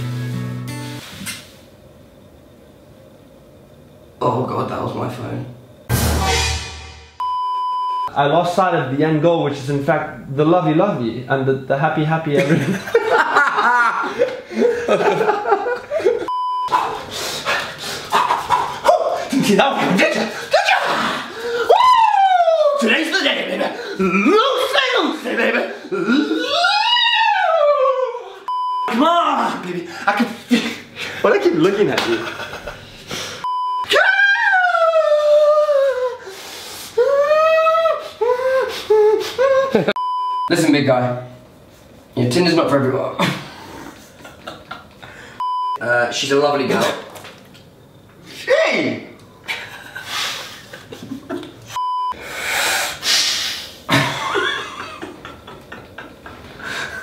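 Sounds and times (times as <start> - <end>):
electronic censor bleep: 7.2 - 8.1, 16.3 - 16.7, 28.5 - 28.9, 33.4 - 33.9, 40.0 - 40.5, 45.4 - 45.8, 51.8 - 52.2.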